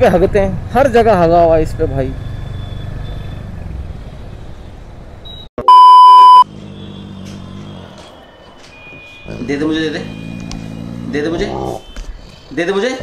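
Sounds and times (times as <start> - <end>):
road noise: 0.0 - 13.0
electronic censor beep: 5.3 - 6.5
motorcycle engine: 6.2 - 8.2.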